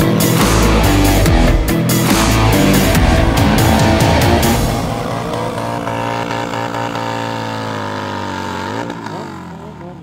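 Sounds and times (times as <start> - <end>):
motorcycle engine revving high: 0.4 - 10.0.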